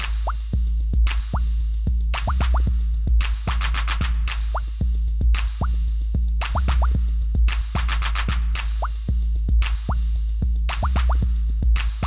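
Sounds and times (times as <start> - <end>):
sped-up hip hop drum machine beat: 0.0 - 12.0.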